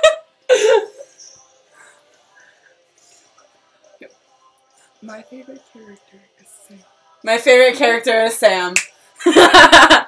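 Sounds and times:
women laughing: 0.0s - 1.1s, 9.2s - 10.0s.

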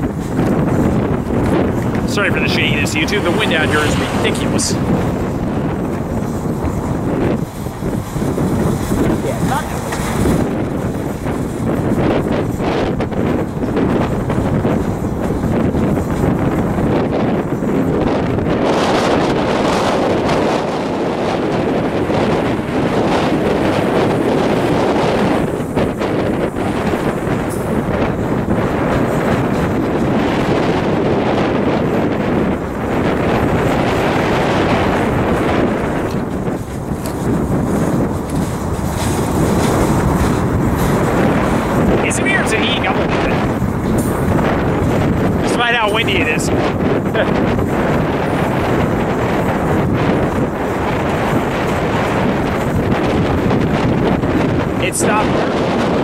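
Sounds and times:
freight train rumbling past: 0.0s - 56.0s
wind buffeting microphone: 0.0s - 56.0s.

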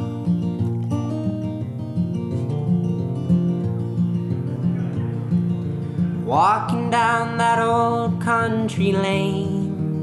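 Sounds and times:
acoustic guitar chords: 0.0s - 10.0s.

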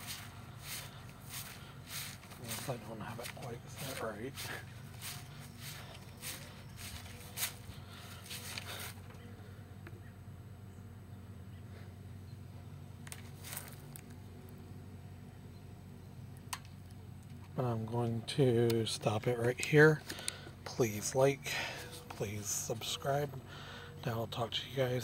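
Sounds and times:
steps and rustles on gravel: 0.0s - 9.2s, 13.1s - 14.2s
pool pump humming: 0.0s - 11.1s, 17.6s - 25.0s.

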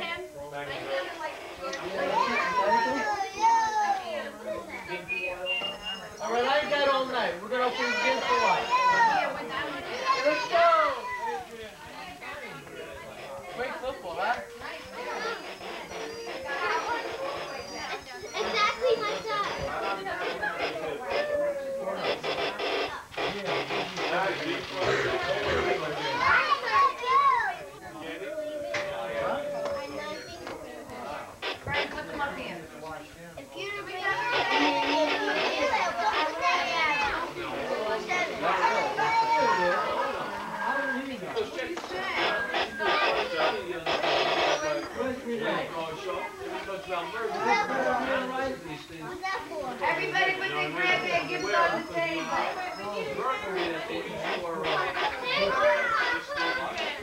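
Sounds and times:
children chattering: 0.0s - 57.0s.

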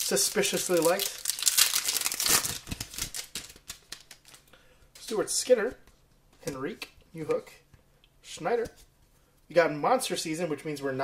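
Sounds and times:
foil wrapper crinkling: 0.0s - 4.4s.

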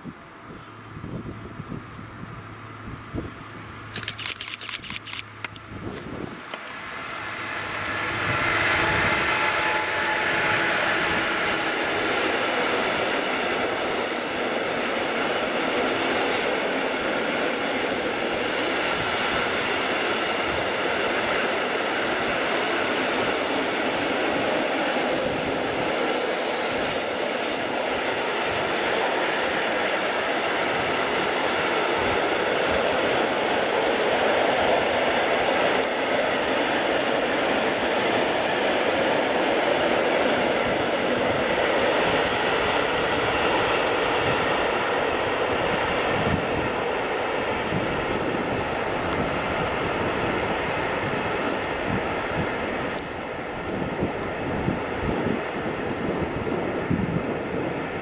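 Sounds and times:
train wheels rumbling on rails: 0.0s - 58.0s.

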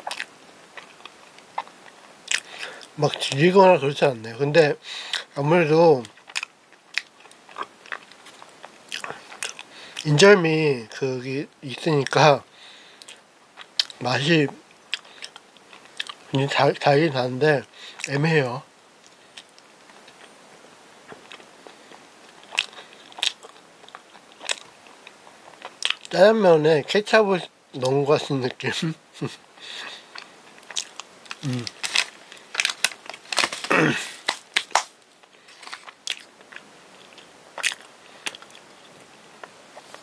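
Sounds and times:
person chewing sticky bread: 0.0s - 3.4s, 6.0s - 10.1s, 13.0s - 14.0s, 14.8s - 16.3s, 21.0s - 26.1s, 29.7s - 40.0s
mouth chewing wet clicks: 0.1s - 3.3s.

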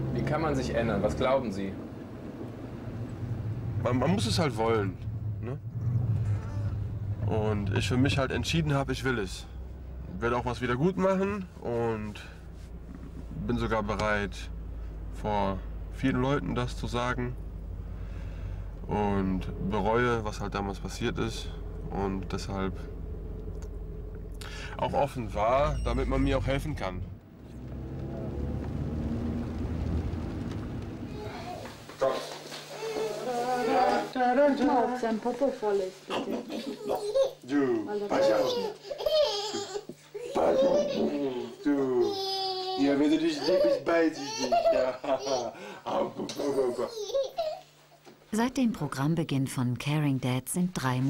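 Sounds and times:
car driving drone inside cabin: 0.0s - 31.7s.

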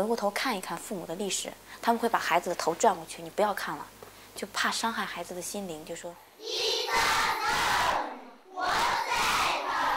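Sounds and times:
children reading aloud in unison: 6.4s - 9.9s.

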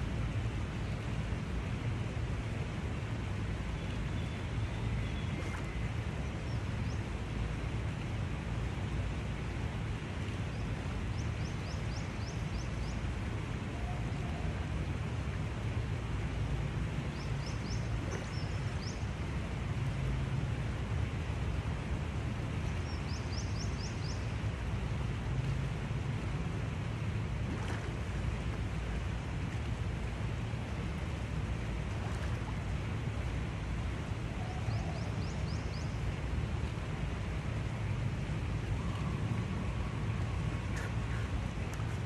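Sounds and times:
low outdoor rumble: 0.0s - 42.0s.

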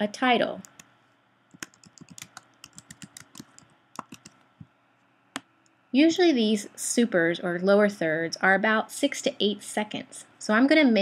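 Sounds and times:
computer keyboard typing: 0.6s - 0.9s, 1.5s - 4.6s.

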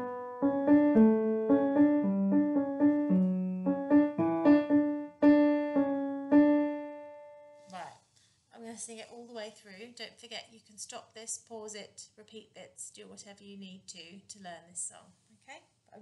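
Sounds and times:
piano keyboard melody: 0.0s - 7.6s.

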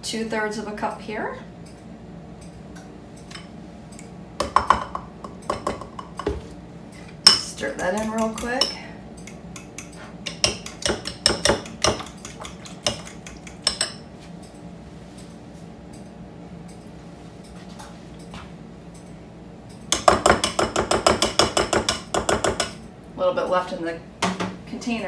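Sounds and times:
whisk clinking against bowl: 7.3s - 14.0s.

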